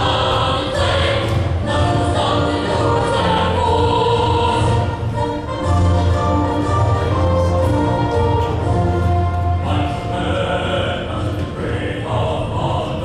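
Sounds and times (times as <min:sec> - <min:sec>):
children's choir singing: 0:00.0 - 0:13.0
musical accompaniment: 0:00.0 - 0:13.0.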